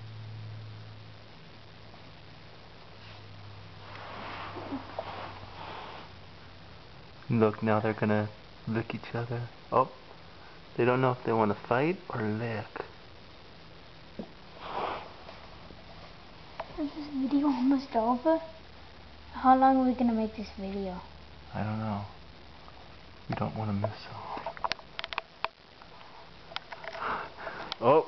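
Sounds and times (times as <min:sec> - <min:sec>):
breathy nose sniff: 0:03.9 - 0:06.2, 0:14.5 - 0:15.3
faint clicks: 0:24.6 - 0:27.8.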